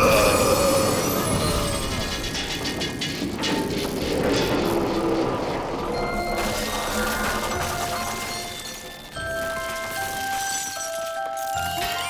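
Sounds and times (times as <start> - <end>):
clockwork gears rumbling and clattering: 0.0 - 12.0.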